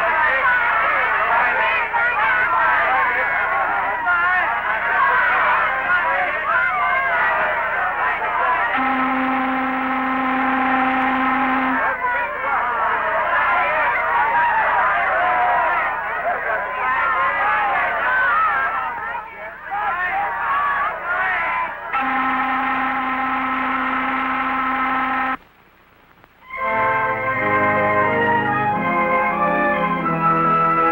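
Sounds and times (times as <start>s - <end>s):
ship's whistle blast: 8.7s - 12.0s, 22.0s - 25.4s.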